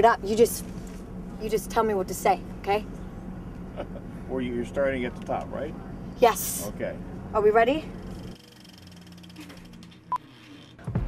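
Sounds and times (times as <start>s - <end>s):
low steady hum: 0.0s - 10.2s.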